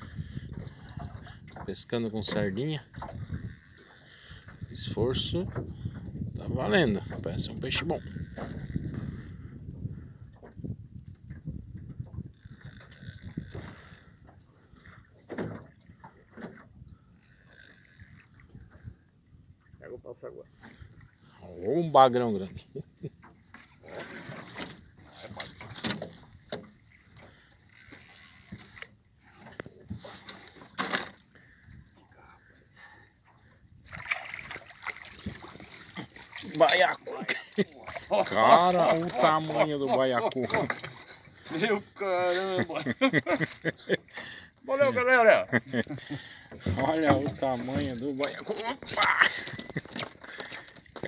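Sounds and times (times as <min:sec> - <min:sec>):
fishing rod knocks and rustles: 0:15.2 - 0:16.7, 0:23.2 - 0:31.3, 0:40.2 - 0:41.3, 0:46.6 - 0:51.0.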